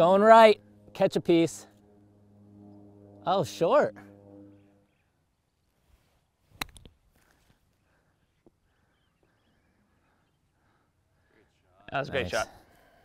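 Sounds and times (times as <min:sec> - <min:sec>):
golf club striking ball: 0:06.6 - 0:06.9.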